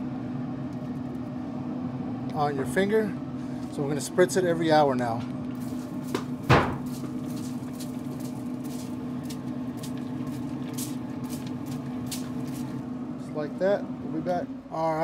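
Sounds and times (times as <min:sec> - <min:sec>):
pellet grill humming: 0:00.0 - 0:15.0.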